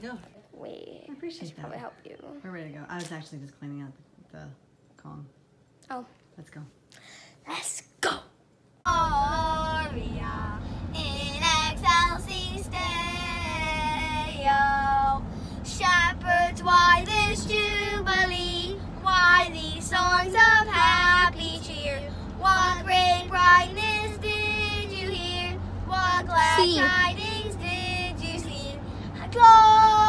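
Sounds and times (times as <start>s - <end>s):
van hum on the road: 8.9s - 30.0s.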